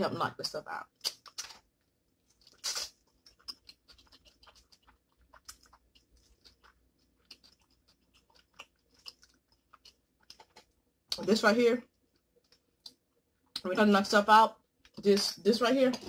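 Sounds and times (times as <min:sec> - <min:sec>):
wet chewing and lip smacks: 0:00.9 - 0:11.2, 0:11.9 - 0:13.7.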